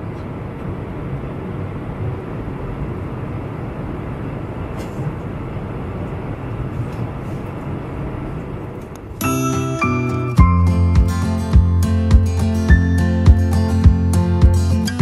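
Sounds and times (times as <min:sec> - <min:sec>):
jet airliner cabin rush: 0:00.0 - 0:09.3.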